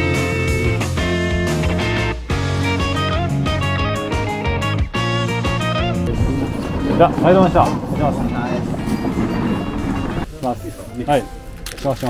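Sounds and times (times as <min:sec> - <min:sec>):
background music: 0:00.0 - 0:12.0
street noise hum: 0:05.8 - 0:11.8
people talking: 0:06.0 - 0:09.0.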